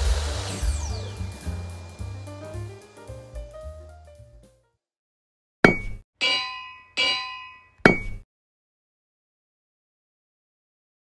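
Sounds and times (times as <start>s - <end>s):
metallic clangs: 5.7s - 8.2s.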